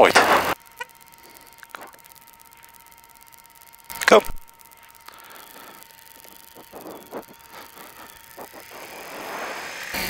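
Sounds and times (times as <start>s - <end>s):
motorcycle riding noise: 0.0s - 0.6s, 5.2s - 10.0s.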